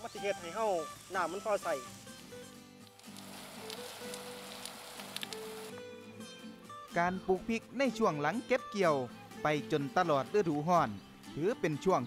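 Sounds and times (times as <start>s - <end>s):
garden hose spraying water: 0.0s - 5.8s
background music with held notes: 0.0s - 12.0s.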